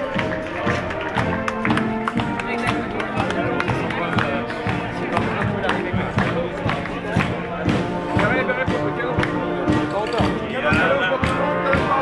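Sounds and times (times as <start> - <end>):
brass band music: 0.0 - 12.0
crowd voices: 0.0 - 12.0
steady drum beat: 0.0 - 12.0.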